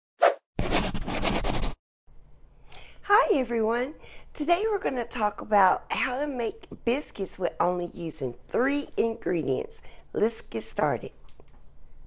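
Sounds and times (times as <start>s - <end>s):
brief swish: 0.2s - 1.8s
rapid rasping scratching: 0.6s - 1.8s.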